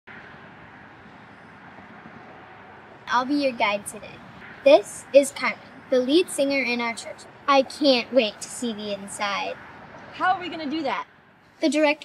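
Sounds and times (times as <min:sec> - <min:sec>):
distant road traffic: 0:00.1 - 0:12.0.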